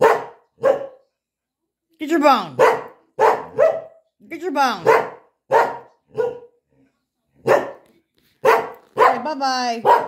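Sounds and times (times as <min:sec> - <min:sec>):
dog barking: 0:00.0 - 0:01.0, 0:02.6 - 0:04.1, 0:04.8 - 0:06.6, 0:07.4 - 0:10.0.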